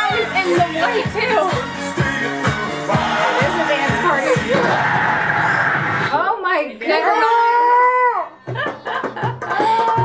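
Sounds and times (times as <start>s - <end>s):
jingle music with drum beat: 0.0s - 4.6s, 8.4s - 10.0s.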